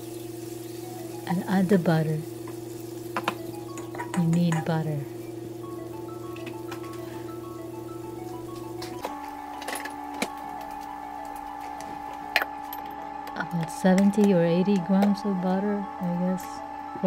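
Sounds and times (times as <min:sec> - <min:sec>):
soft chime-like background music: 0:00.0 - 0:17.0.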